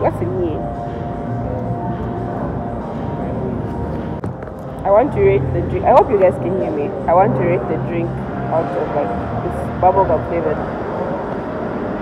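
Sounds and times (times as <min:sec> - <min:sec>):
woman speaking: 0:00.0 - 0:00.6, 0:04.8 - 0:10.6.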